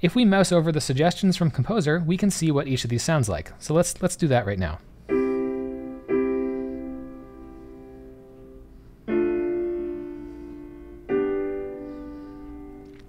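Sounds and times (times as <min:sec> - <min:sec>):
piano block chords: 0:05.0 - 0:13.0.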